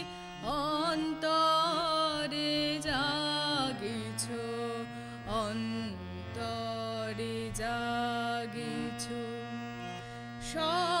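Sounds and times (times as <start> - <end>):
woman singing: 0.0 - 9.8, 10.4 - 11.0.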